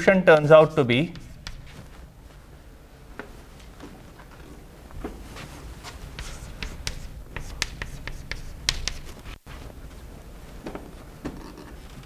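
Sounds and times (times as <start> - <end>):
chalk tapping on a blackboard: 1.1 - 1.8, 6.1 - 9.2.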